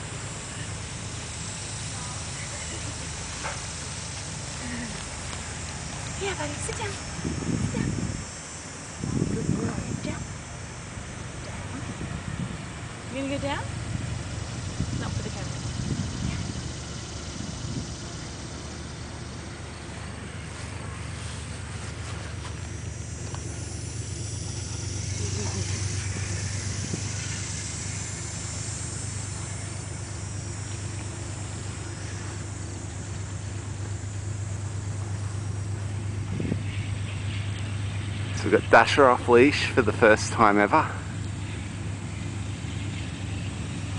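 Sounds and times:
outdoor background noise: 0.0s - 43.9s
steady low hum: 0.0s - 43.9s.

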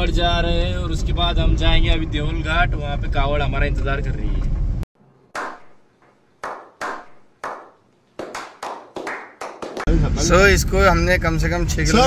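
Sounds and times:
men slow clapping: 6.4s - 9.9s.

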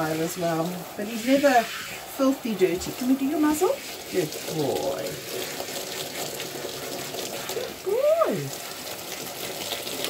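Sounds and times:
water spraying onto dog: 0.0s - 10.0s.

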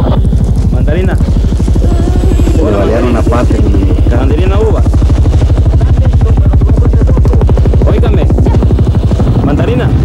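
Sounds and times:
helicopter rotor beating: 0.0s - 10.0s.

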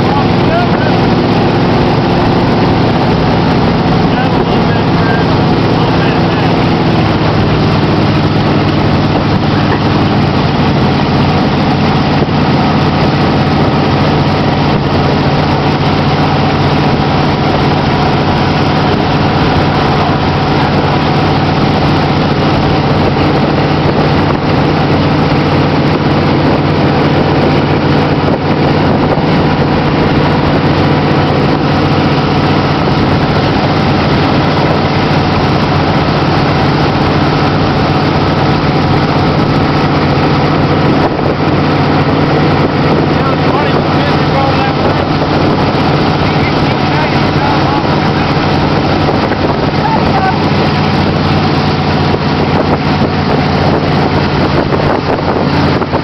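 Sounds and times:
boat engine running: 0.0s - 56.0s
rush of water and wind: 0.0s - 56.0s.

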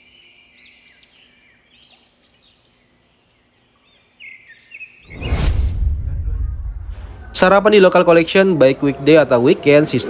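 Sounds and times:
small birds chirping: 0.0s - 5.4s.

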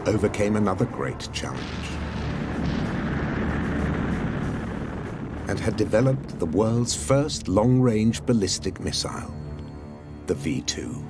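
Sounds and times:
rocket engine rumbling: 0.0s - 8.3s.

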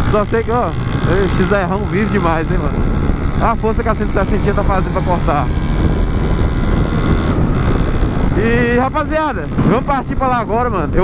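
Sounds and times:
motorcycle engine working hard: 0.0s - 11.0s
wind rushing over microphone: 0.0s - 11.0s.

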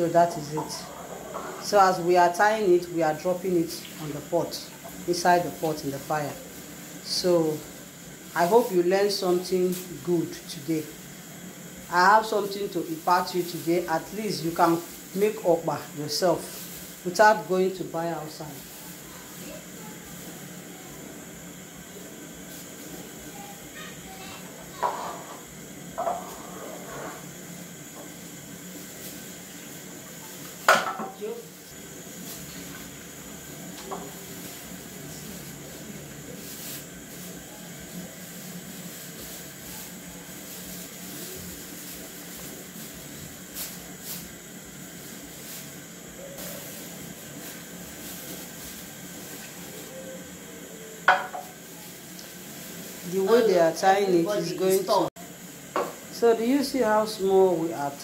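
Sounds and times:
steady background hiss: 0.0s - 58.0s.

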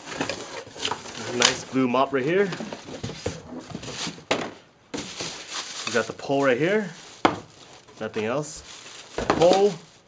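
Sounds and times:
packaging rustling and scraping: 0.0s - 10.0s
plastic bucket set down: 9.1s - 9.9s.

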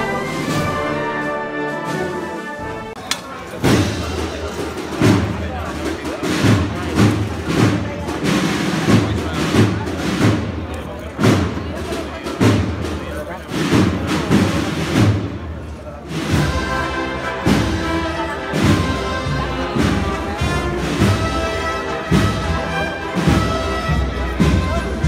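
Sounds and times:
crowd voices: 0.0s - 25.0s
marching band drums: 0.0s - 25.0s.

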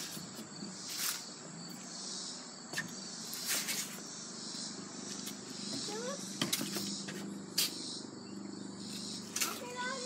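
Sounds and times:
crickets and insects chirping: 0.0s - 10.0s.

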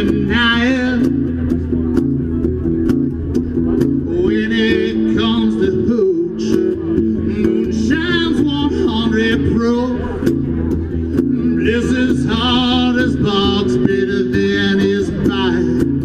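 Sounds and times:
man singing: 0.0s - 1.6s, 3.8s - 16.0s
guitar strumming through pa: 0.0s - 16.0s.

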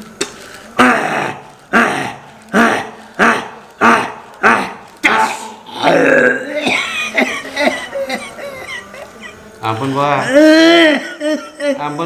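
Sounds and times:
man belching loudly: 0.8s - 6.9s
rough voice sounds: 0.8s - 6.9s.

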